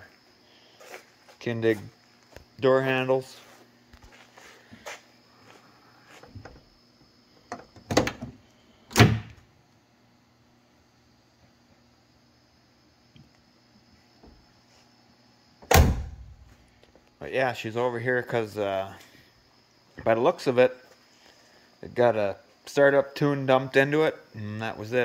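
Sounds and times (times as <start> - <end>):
car door clunks: 15.7 - 16.3
car door shutting: 15.7 - 16.3.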